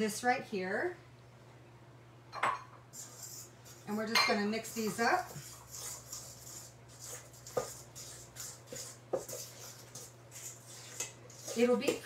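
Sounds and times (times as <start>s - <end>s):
fork scraping dough in metal bowl: 2.9s - 12.0s.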